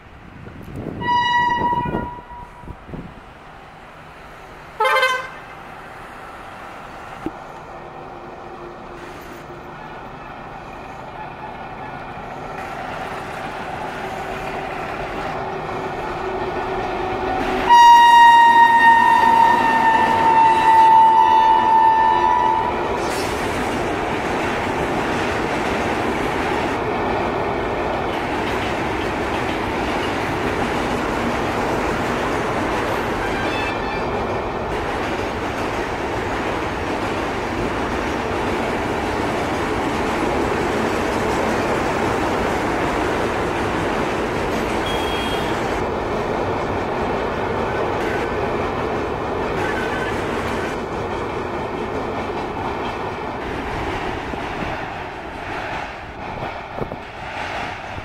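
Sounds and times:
train rumbling over a bridge: 0.0 - 58.0
train horn blast: 1.0 - 2.8, 4.8 - 5.5, 17.6 - 22.9, 33.1 - 34.1, 44.8 - 45.7.

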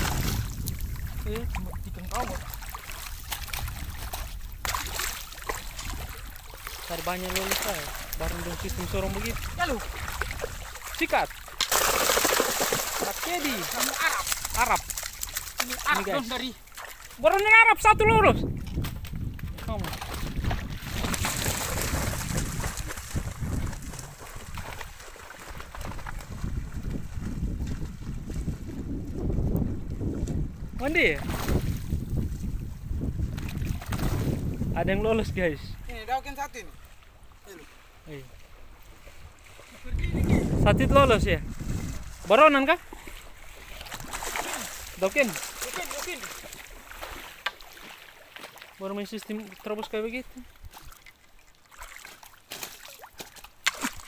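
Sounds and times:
wind rumbling on microphone: 0.0 - 47.3
choppy water lapping: 0.0 - 54.0
person speaking: 13.0 - 14.8, 15.6 - 16.6, 44.5 - 46.4.

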